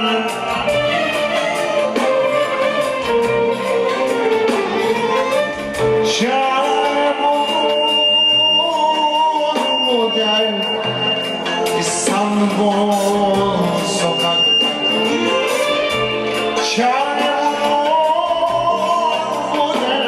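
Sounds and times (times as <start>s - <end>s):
person singing into a microphone: 0.0s - 2.4s, 5.8s - 15.8s, 16.4s - 20.0s
band accompaniment: 0.0s - 20.0s.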